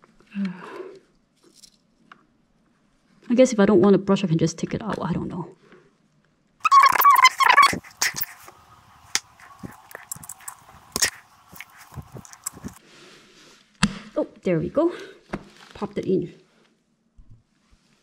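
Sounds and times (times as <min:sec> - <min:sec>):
loud squeal: 0:06.6 - 0:08.4.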